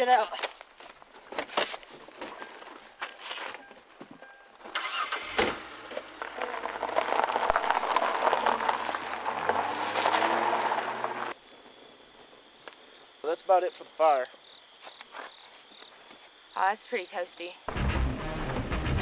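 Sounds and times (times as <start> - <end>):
car engine starting and running: 4.6 - 11.4, 17.7 - 19.0.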